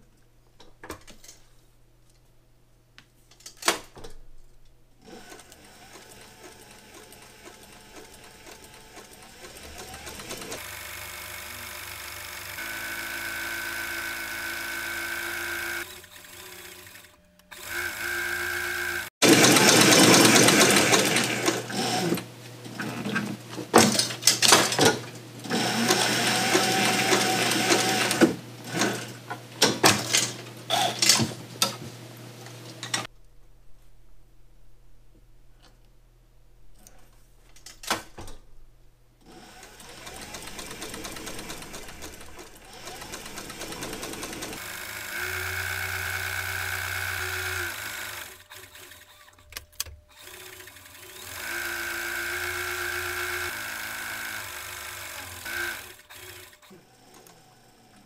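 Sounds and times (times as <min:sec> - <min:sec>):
rapid stitching clicks: 0:05.0 - 0:18.0, 0:19.2 - 0:22.2, 0:39.5 - 0:56.6
sewing machine hum: 0:05.0 - 0:31.2, 0:39.2 - 0:49.4, 0:50.1 - 0:58.0.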